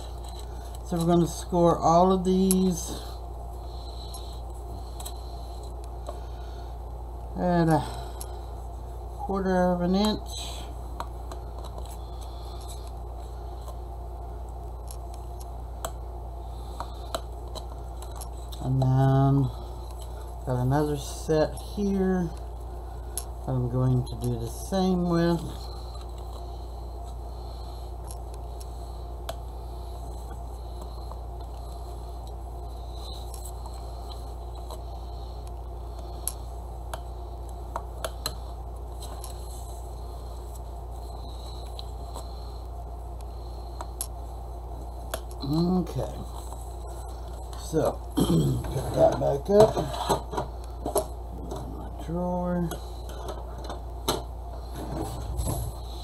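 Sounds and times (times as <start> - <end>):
low background hum: 0.0 - 56.0
person murmuring: 47.7 - 49.9.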